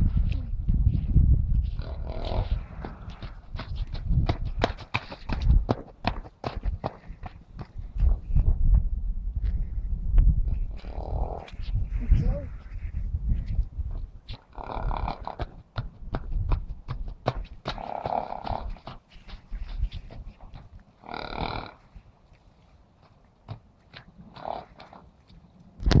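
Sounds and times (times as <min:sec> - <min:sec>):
wind rumbling on microphone: 0:00.0 - 0:22.5, 0:23.5 - 0:26.0
horse breathing noise: 0:00.0 - 0:25.8
hooves on wet sand: 0:00.1 - 0:08.8, 0:10.6 - 0:26.0.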